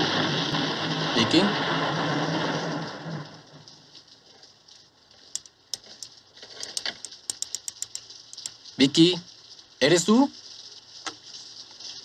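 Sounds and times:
rain-like noise: 0:00.0 - 0:12.0.

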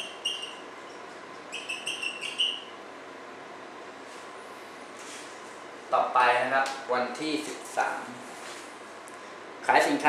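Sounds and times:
marker squeaking on whiteboard: 0:00.0 - 0:00.6, 0:01.5 - 0:02.8.

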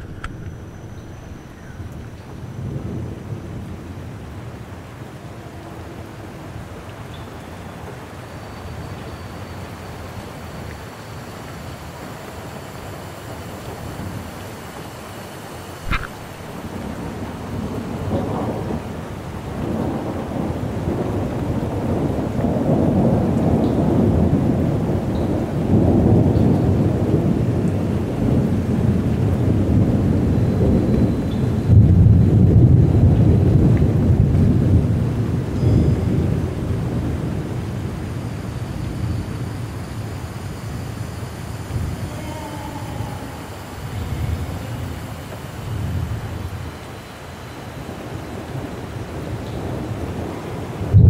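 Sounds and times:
low rolling rumble: 0:00.0 - 0:06.8.

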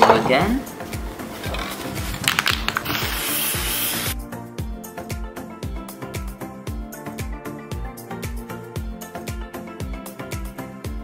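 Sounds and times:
background music with a beat: 0:00.4 - 0:11.0
aerosol spray can hissing: 0:02.3 - 0:04.2.

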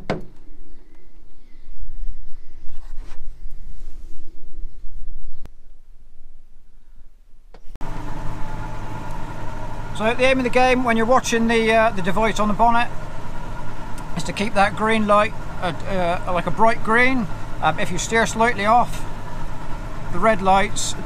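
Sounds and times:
tractor diesel engine running: 0:07.8 - 0:21.0.

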